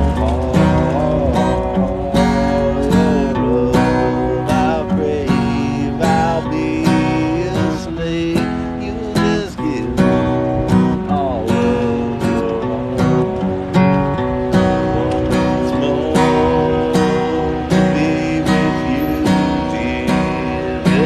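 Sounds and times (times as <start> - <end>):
acoustic guitar strumming: 0.0 - 21.0
man singing: 0.0 - 21.0.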